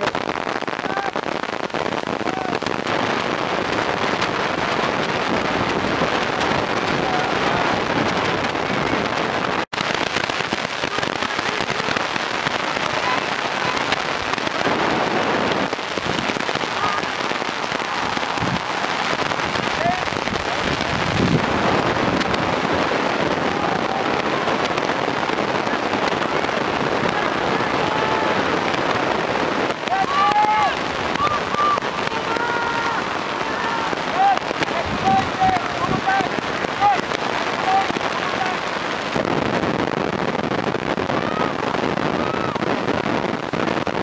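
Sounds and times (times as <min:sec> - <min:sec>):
crackling hiss: 0:00.0 - 0:44.0
distant indistinct shouting: 0:29.8 - 0:38.6.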